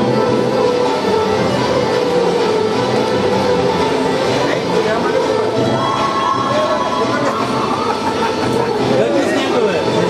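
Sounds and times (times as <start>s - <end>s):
folk dance music: 0.0s - 10.0s.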